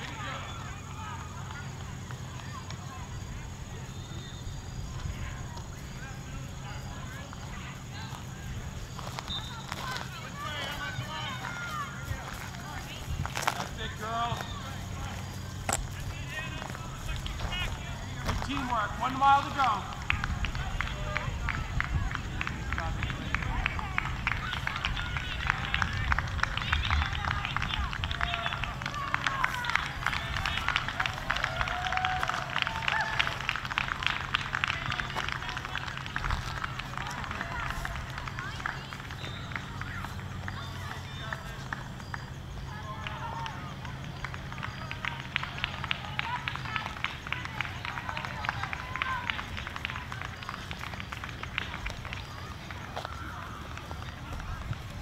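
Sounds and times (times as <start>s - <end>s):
distant spectators calling out: 0.0s - 55.0s.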